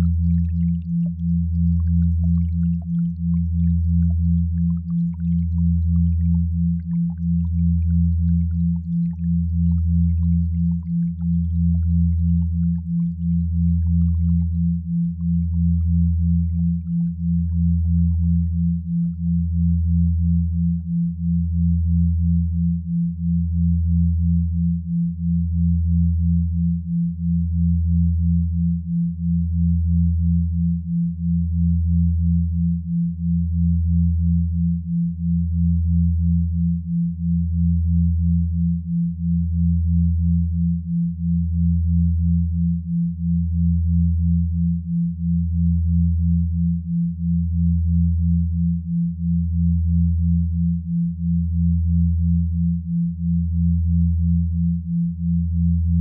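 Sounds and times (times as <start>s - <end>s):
pulsing low hum: 0.0s - 56.0s.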